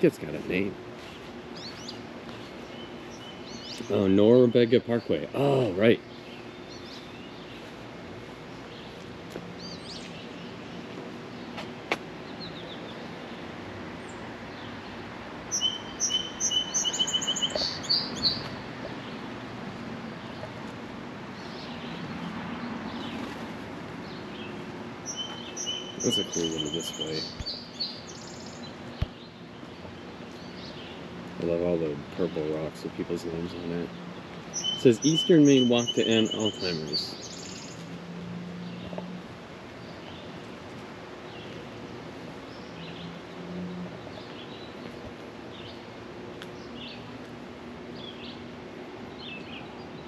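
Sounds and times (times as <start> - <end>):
outdoor background noise: 0.0 - 50.0
songbird singing high notes: 15.5 - 18.5, 25.0 - 28.8, 33.9 - 37.9.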